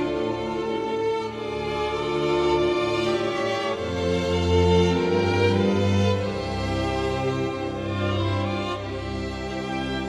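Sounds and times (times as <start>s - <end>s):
string quartet bowed notes: 0.0s - 10.0s.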